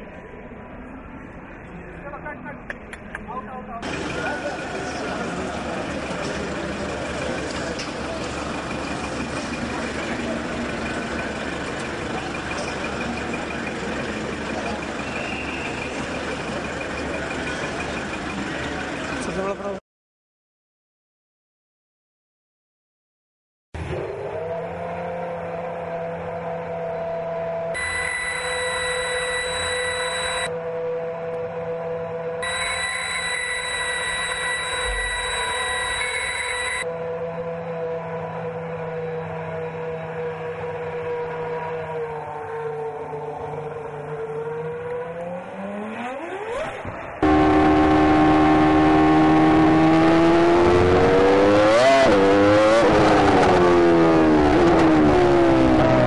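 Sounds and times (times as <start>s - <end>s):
high engine whine: 0.0s - 19.8s, 23.8s - 56.0s
racing car engine idling: 3.8s - 19.7s
racing engine at high revs: 23.8s - 56.0s.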